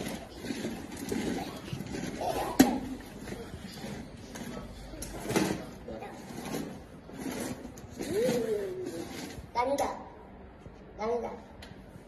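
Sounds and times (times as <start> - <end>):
plastic wheels rolling on tile: 0.0 - 9.6.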